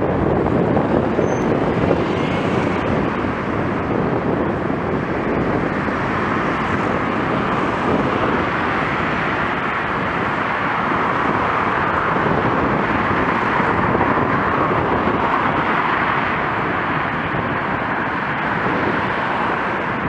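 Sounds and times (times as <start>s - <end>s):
cars passing: 0.0s - 20.0s
wind rushing on microphone: 0.0s - 20.0s.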